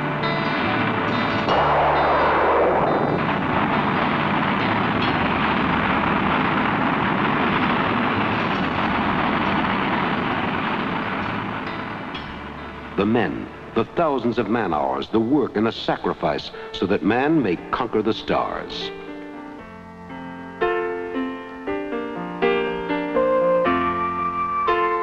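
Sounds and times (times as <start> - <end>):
rocket engine roar: 0.0 - 14.8.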